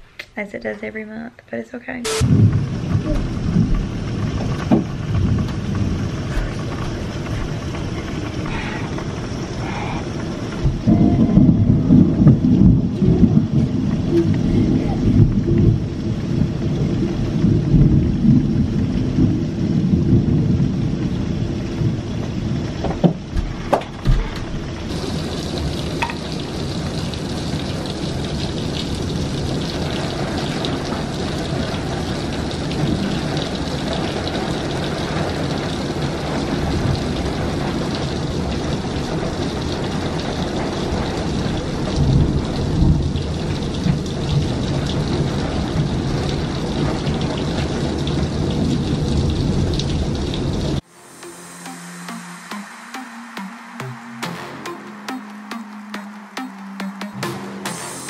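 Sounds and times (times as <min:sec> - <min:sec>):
steady rain: 0:02.0 - 0:58.0
rolling thunder: 0:02.2 - 0:50.8.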